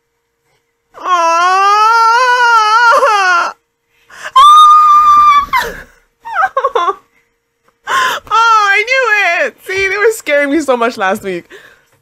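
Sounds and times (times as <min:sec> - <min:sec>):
woman squealing: 0:01.0 - 0:03.6, 0:04.2 - 0:07.0
woman giggling: 0:05.6 - 0:07.1.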